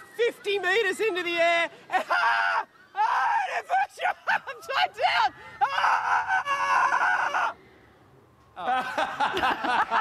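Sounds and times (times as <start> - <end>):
man screaming: 1.9 - 7.5.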